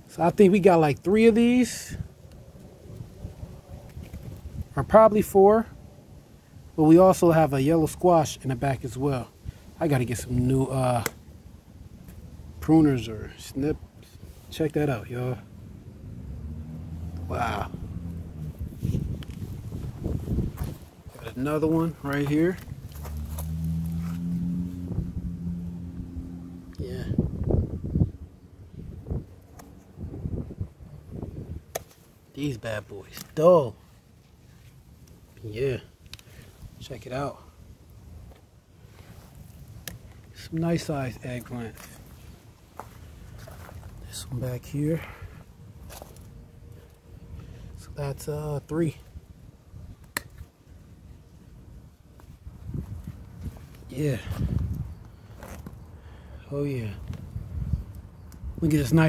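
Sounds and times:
low engine hum: 15.4s - 31.7s
low rumbling handling noise: 16.0s - 28.2s.

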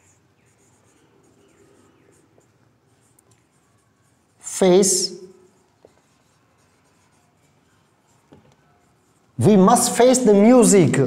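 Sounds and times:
marker squeaking on whiteboard: 0.0s - 10.7s.

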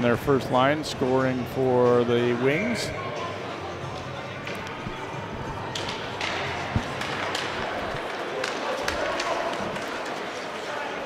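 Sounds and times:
murmur of voices: 0.0s - 11.0s
sticks and pucks clacking on ice: 4.4s - 11.0s.

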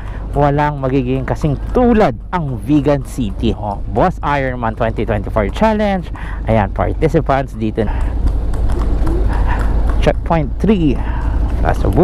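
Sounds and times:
hooves clip-clopping on cobblestones: 0.0s - 12.0s
motorcycle rumble: 0.0s - 12.0s
wind: 0.0s - 12.0s.

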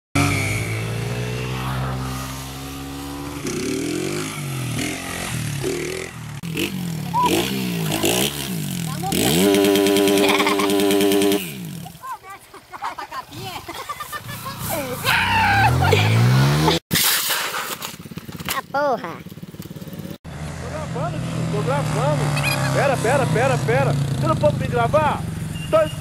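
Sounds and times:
motorcycle engine revving: 0.2s - 12.0s, 14.2s - 16.8s, 19.2s - 26.0s.

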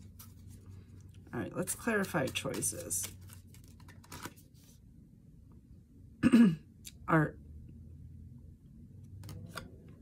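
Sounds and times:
cards being shuffled: 0.0s - 4.8s, 9.1s - 9.9s
person clearing throat: 6.2s - 6.7s.

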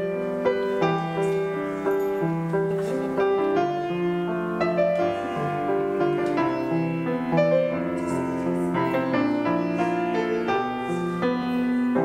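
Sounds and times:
slow gentle piano piece: 0.0s - 12.0s.

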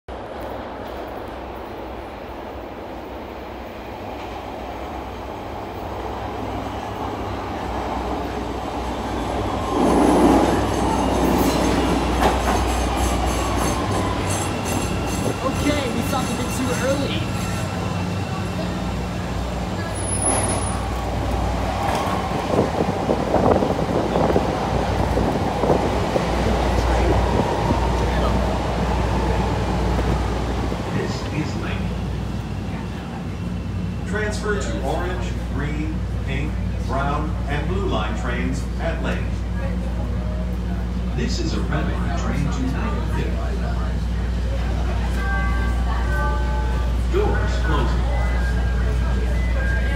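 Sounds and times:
subway train rumbling: 0.0s - 49.9s
wheels and brakes squealing: 19.8s - 21.0s.

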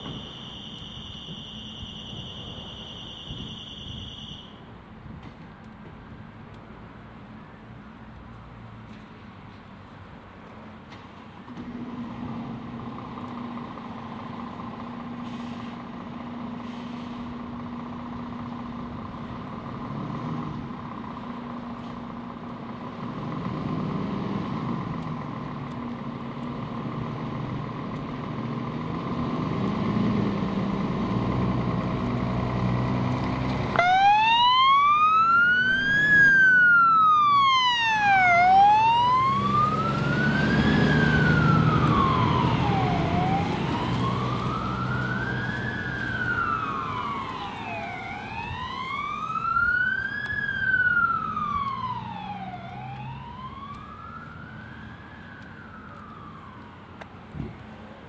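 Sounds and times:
wailing siren: 0.0s - 4.6s, 33.7s - 57.0s
fire engine diesel engine revving: 11.6s - 34.2s, 37.7s - 49.6s.

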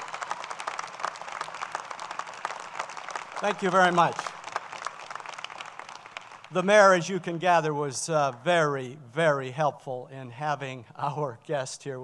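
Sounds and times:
crowd clapping: 0.0s - 7.6s.

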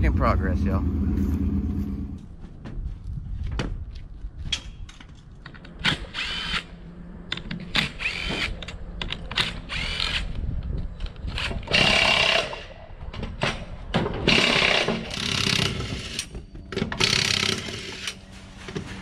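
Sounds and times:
power tool whirring in bursts: 11.4s - 12.7s, 14.2s - 16.3s.

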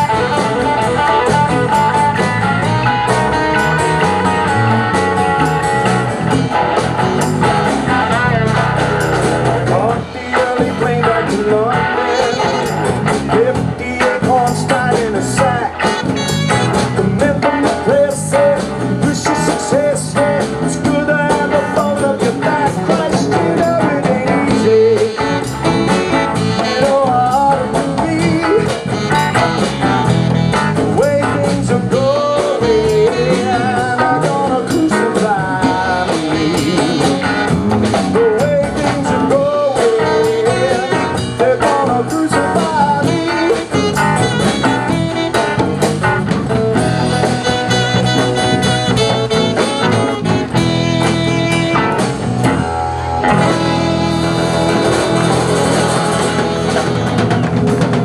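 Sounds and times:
saxophone: 0.0s - 8.7s, 11.7s - 13.2s, 15.6s - 17.1s, 23.6s - 31.5s, 32.2s - 34.6s, 35.5s - 38.5s, 39.2s - 41.6s, 42.8s - 58.0s
live blues rock band: 0.0s - 58.0s
man singing: 9.4s - 45.6s, 52.5s - 57.1s.

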